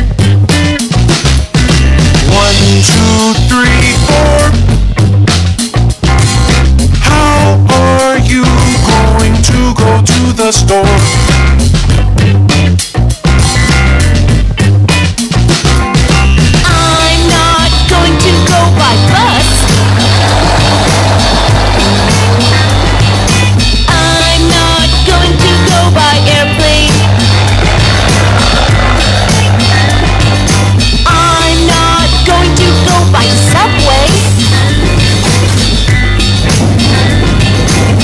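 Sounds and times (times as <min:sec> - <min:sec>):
children's pop-rock song: 0:00.0 - 0:38.0.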